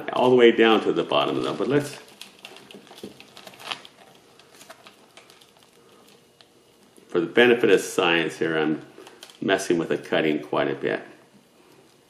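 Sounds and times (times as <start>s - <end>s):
potting soil crumbling: 0.0s - 9.9s
roots being pulled apart: 0.1s - 6.9s.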